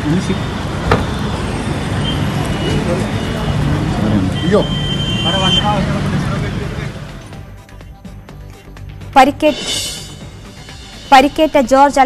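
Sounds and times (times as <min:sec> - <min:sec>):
traffic: 0:00.0 - 0:08.6.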